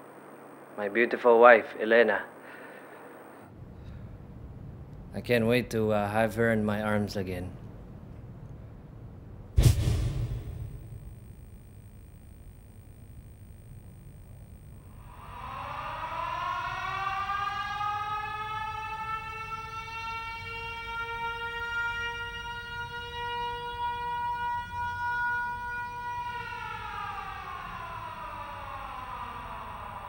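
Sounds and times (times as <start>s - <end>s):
siren wailing: 14.6s - 30.0s.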